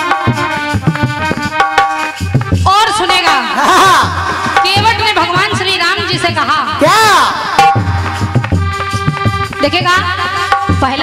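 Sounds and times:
hand drum strokes: 0.0 - 5.8, 6.8 - 11.0
harmonium melody: 0.0 - 11.0.

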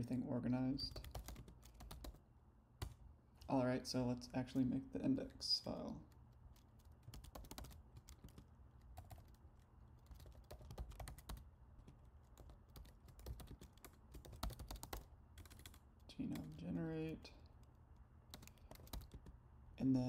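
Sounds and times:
faint keyboard typing: 0.8 - 2.2, 2.8 - 3.6, 5.9 - 19.4.

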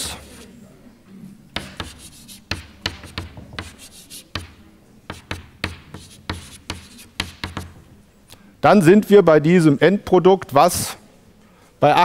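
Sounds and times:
chalk on blackboard: 0.0 - 0.5, 1.6 - 7.8.

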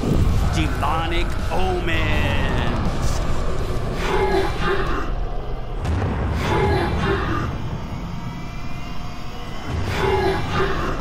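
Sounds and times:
fire and explosion roar: 0.0 - 11.0.

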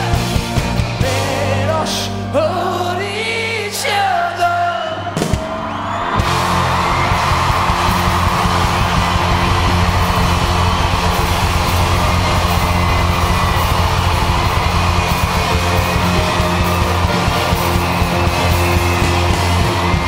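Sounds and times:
live rock band playing: 0.0 - 2.4, 5.0 - 20.0
drums: 0.0 - 2.9, 3.7 - 20.0.

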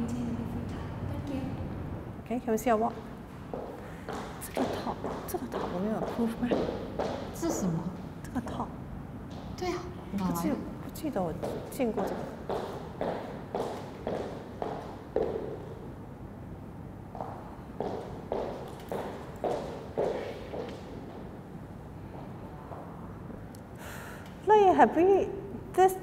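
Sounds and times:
footsteps on wooden floor: 2.8 - 7.8, 9.2 - 9.6, 11.3 - 15.7, 17.2 - 21.3.

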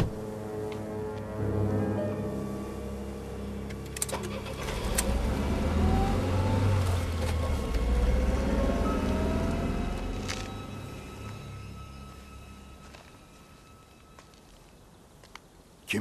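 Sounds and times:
car engine accelerating: 3.7 - 11.5.

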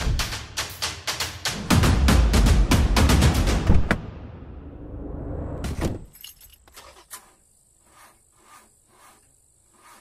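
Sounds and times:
low drum-heavy music: 0.0 - 4.1
car keys jingling: 6.0 - 7.0.

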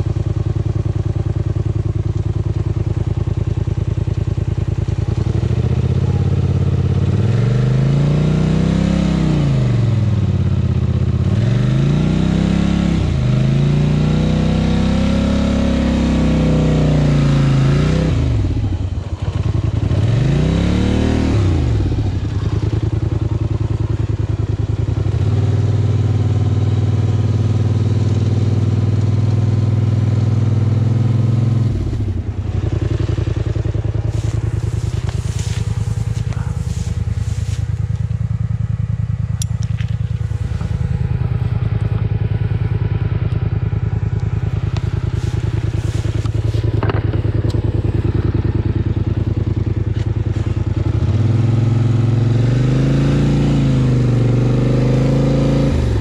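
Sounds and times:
quad bike engine revving: 2.8 - 56.0.

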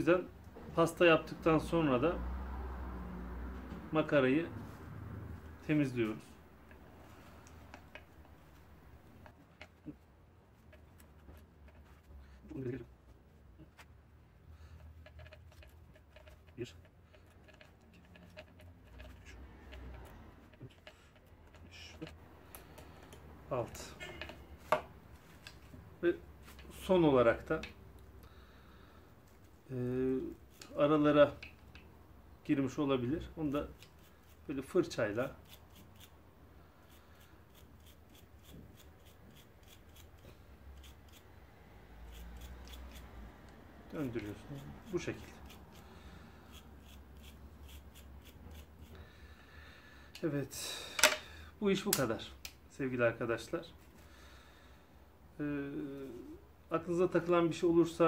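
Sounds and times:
small brush scrubbing metal: 7.0 - 12.8, 14.5 - 24.7, 29.4 - 31.4, 33.4 - 41.3, 42.0 - 43.2, 43.9 - 49.1
cloth rubbing metal: 14.6 - 22.2.

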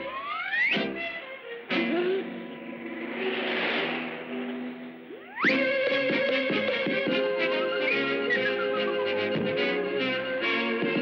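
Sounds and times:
orchestral cartoon music: 0.0 - 11.0
hissing wash of sound: 2.5 - 5.3.

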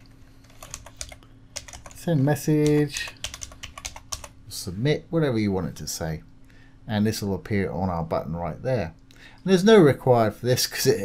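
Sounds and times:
typing on computer keyboard: 0.5 - 2.0, 2.6 - 4.3.

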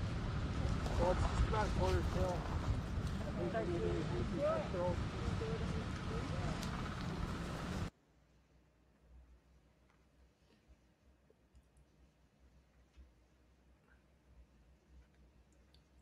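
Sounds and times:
voices: 0.0 - 7.9
wind and fire rushing: 0.0 - 7.9.

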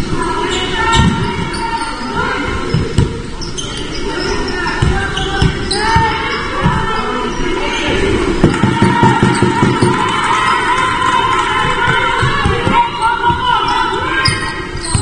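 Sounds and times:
players calling out: 0.4 - 15.0
basketball bouncing on wooden floor: 8.4 - 10.1, 11.6 - 13.5.

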